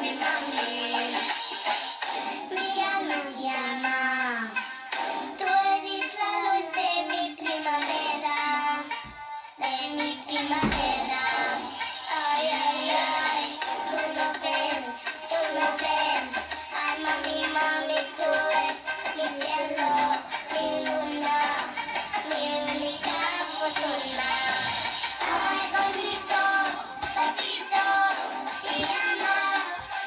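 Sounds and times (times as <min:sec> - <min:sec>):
backing music track: 0:00.0 - 0:30.0
child singing a pop song: 0:00.0 - 0:30.0.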